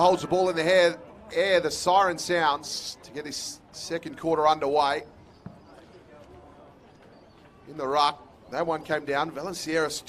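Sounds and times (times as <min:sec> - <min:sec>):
faint open-air ambience: 0:00.0 - 0:10.0.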